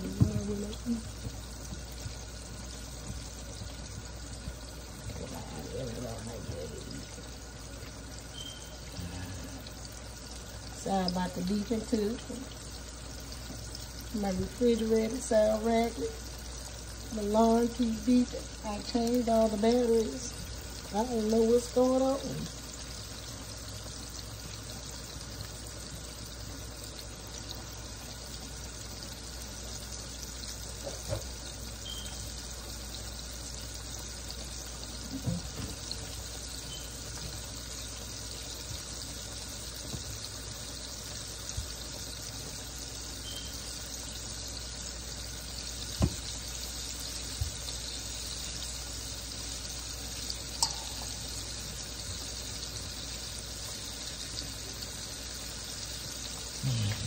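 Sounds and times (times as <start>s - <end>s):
chicken sizzling in hot oil: 0.0s - 57.0s.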